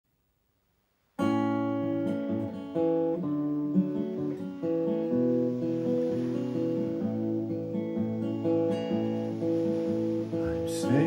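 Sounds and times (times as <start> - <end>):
acoustic guitar chords: 1.2 - 11.0.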